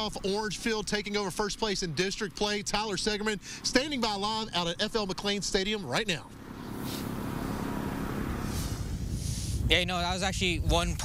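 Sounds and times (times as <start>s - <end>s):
brief high hiss: 6.8s - 7.6s, 8.4s - 9.6s
wind on microphone: 8.2s - 11.0s.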